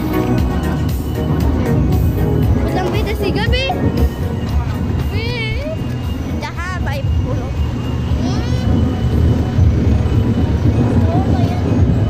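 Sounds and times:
distant voices: 0.0 - 12.0
steady low street rumble: 0.0 - 12.0.

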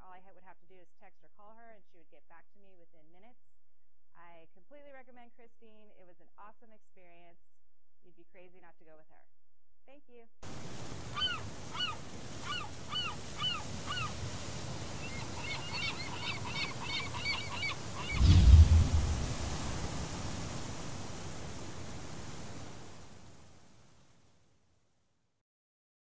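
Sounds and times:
ocean surf: 10.5 - 24.1
gulls calling: 10.6 - 22.6
loud low boom: 18.2 - 20.1.

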